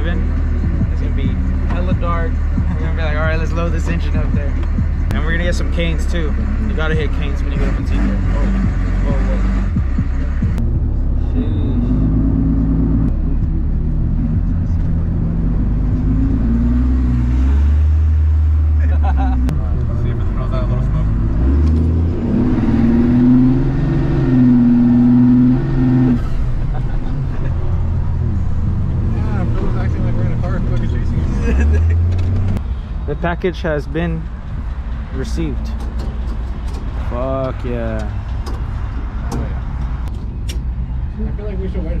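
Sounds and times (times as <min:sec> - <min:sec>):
held low tones: 0:00.0 - 0:41.3
truck engine and road noise: 0:00.0 - 0:42.0.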